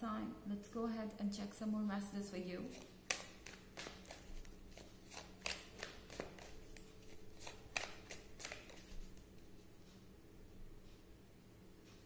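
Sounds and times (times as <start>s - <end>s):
cards being shuffled: 2.7s - 9.3s.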